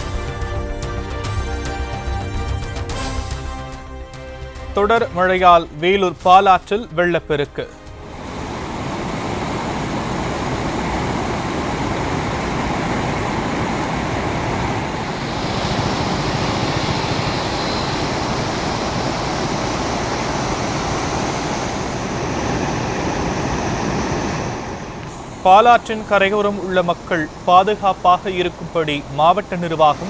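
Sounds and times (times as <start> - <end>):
water rushing over rocks: 8.1 - 30.0.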